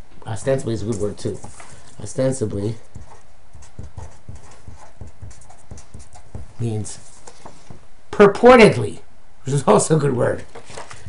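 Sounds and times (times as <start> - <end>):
pen writing on card: 2.8 - 6.5.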